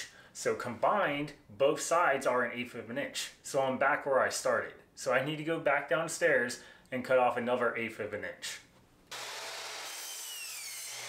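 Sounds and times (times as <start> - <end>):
miter saw hissing cut: 9.1 - 11.0.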